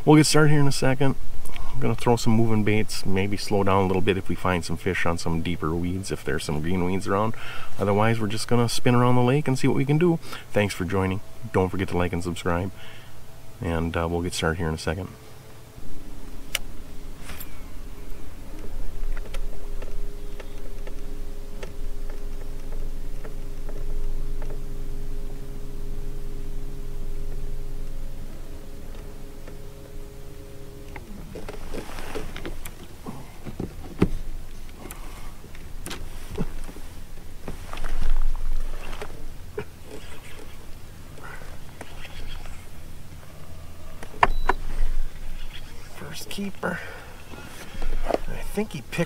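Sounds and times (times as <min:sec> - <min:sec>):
electric trolling motor humming: 0:06.5 - 0:49.0.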